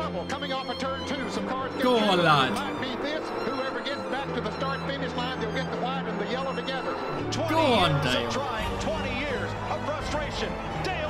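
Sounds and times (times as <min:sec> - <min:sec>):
background music: 0:00.0 - 0:11.0
person talking: 0:01.8 - 0:02.8, 0:07.5 - 0:08.3.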